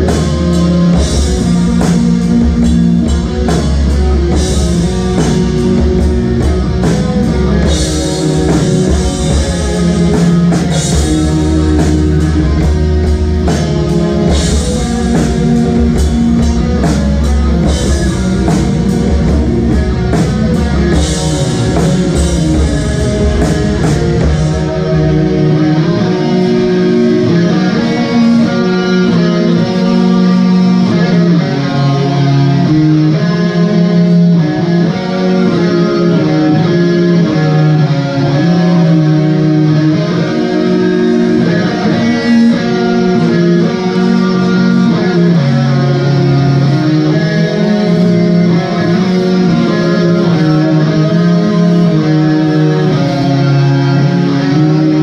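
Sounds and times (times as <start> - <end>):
bass guitar: 0.0 - 55.0
electric guitars playing chords: 0.0 - 55.0.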